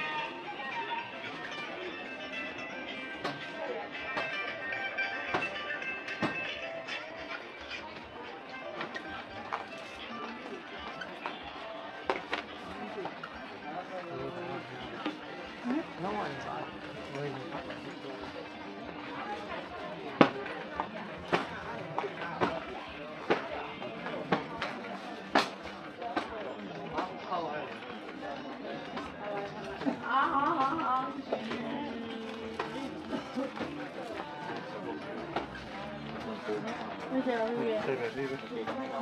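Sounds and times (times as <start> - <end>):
background music: 0.0 - 39.0
indistinct chatter of shoppers: 0.0 - 39.0.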